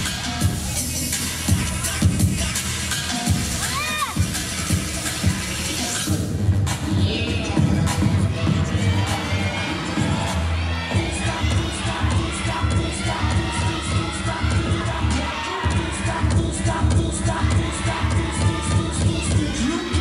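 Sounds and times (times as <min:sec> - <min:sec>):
audience cheering and shouting: 0:00.0 - 0:06.1, 0:07.1 - 0:20.0
loud music with heavy bass beat: 0:00.0 - 0:20.0.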